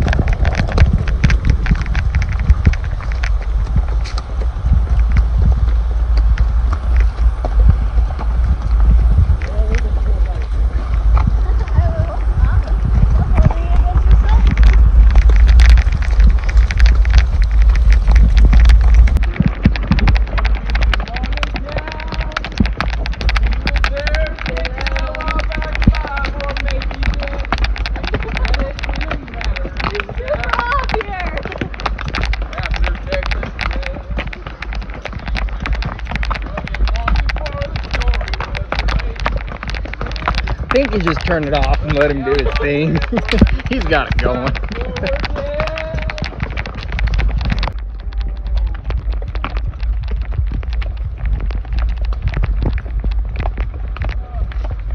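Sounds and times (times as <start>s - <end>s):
horses walking with tack clicking: 0.0s - 54.9s
wind rumbling on microphone: 0.0s - 54.9s.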